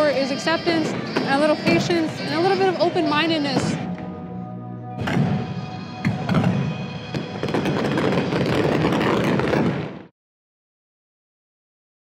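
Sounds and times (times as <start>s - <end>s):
fireworks crackling and popping: 5.0s - 10.1s.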